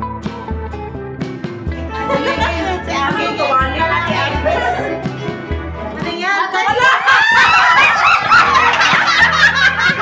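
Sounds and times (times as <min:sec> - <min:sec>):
shrill voices overlapping: 0:01.8 - 0:05.4, 0:06.5 - 0:09.4
woman shrieking with delight: 0:06.8 - 0:08.2.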